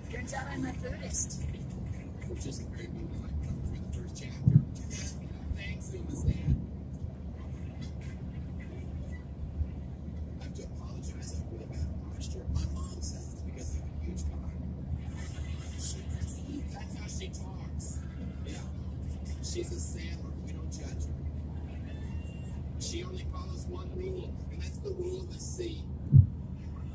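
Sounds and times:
car tyre and engine rumble: 0.0 - 26.9.

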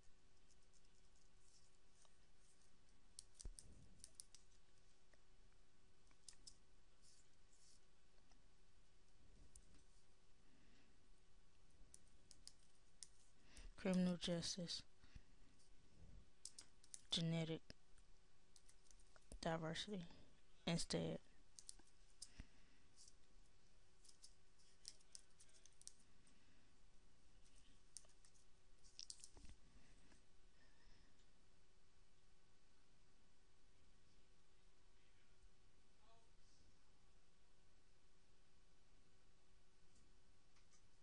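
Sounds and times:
soft rustle: 0.0 - 5.3, 6.3 - 8.4
computer keyboard typing: 3.1 - 4.6, 6.1 - 6.6, 11.9 - 13.2, 16.4 - 17.3, 18.5 - 19.4, 21.5 - 22.3, 27.9 - 29.5.

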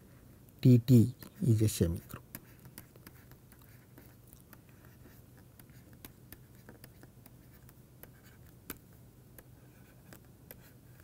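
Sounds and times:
stylus tapping on pen tablet: 2.2 - 10.8.

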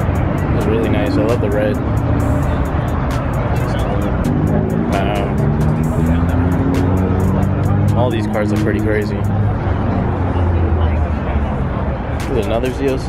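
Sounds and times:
background music: 0.0 - 13.0
car engine revving: 0.0 - 13.0
crowd voices: 0.0 - 13.0.

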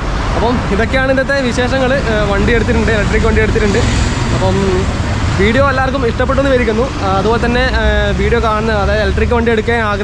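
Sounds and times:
person talking: 0.3 - 10.0.

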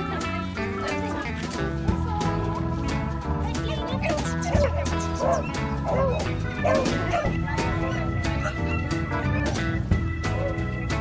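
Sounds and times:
background music: 0.0 - 11.0
dog yelping: 4.0 - 9.0.

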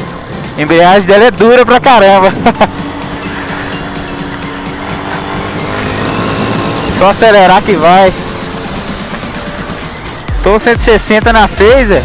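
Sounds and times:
motorcycle engine accelerating: 1.4 - 12.0.

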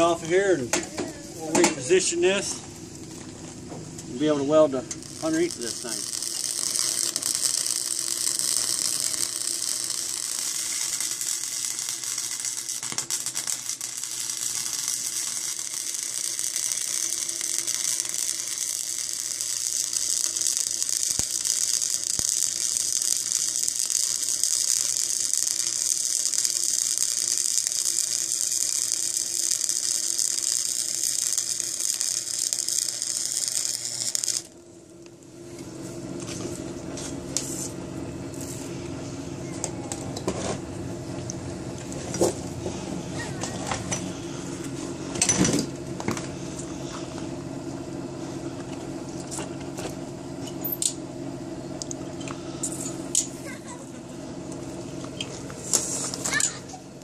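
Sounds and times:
arc welding crackling hiss: 0.0 - 38.8, 51.8 - 53.8, 54.4 - 57.0.

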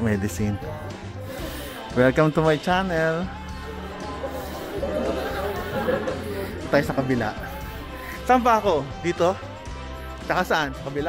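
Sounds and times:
babble of young voices: 3.4 - 8.3.

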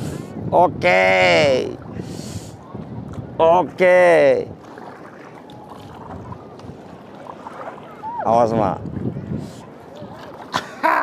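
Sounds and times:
sea water washing: 0.0 - 11.0
wind: 0.0 - 11.0.

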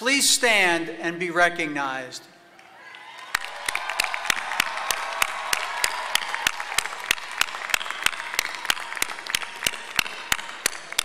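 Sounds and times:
crowd applauding: 2.5 - 11.0
sharp rhythmic claps: 2.6 - 11.0.

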